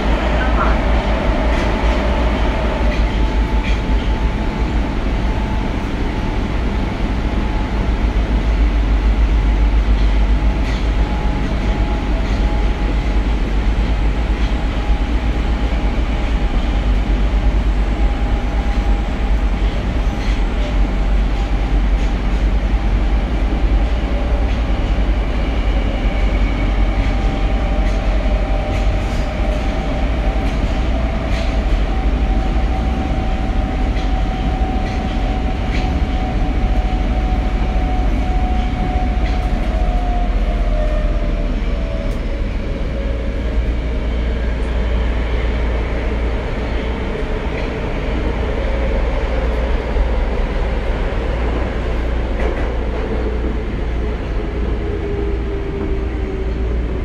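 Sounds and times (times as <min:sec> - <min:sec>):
steady train whine: 0:00.0 - 0:57.0
subway train rumble: 0:00.0 - 0:57.0.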